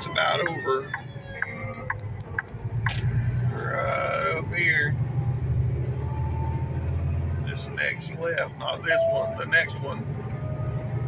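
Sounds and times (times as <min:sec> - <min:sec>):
diesel engine rumble in truck cab: 0:00.0 - 0:11.0.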